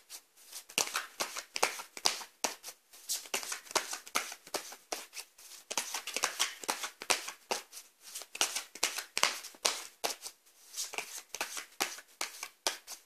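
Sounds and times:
cards shuffled by hand: 0.5 - 2.6, 3.2 - 13.0.

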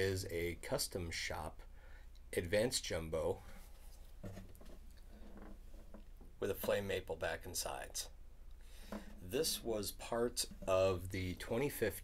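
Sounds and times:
guitar handling noise: 3.8 - 7.0, 8.8 - 9.7.

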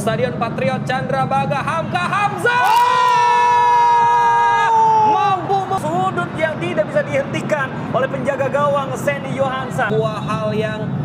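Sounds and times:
excited commentary: 0.6 - 10.8
stadium crowd noise: 1.3 - 9.9
commentator shouting: 1.4 - 9.9.

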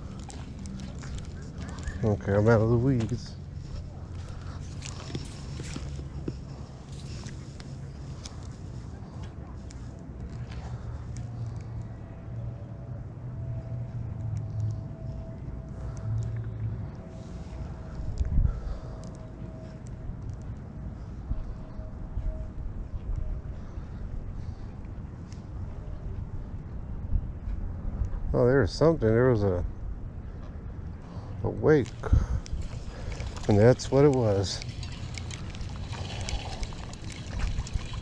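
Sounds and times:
outdoor background rumble: 0.0 - 38.0.

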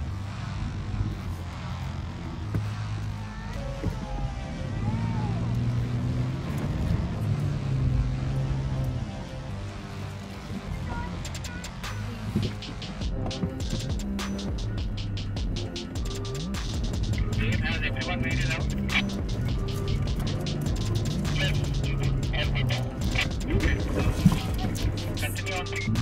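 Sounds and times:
off-road vehicle driving on sand: 0.0 - 14.4, 15.6 - 26.0
music playing: 0.0 - 26.0.

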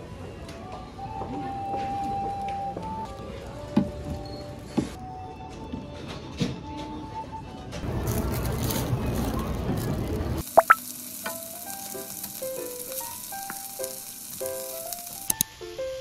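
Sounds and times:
chicken sizzling in frying pan: 7.8 - 16.0.

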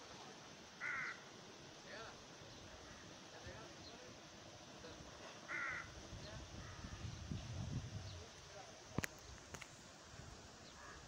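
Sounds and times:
faint background hiss: 0.0 - 11.0
bird cawing: 0.8 - 1.3, 5.5 - 6.0.

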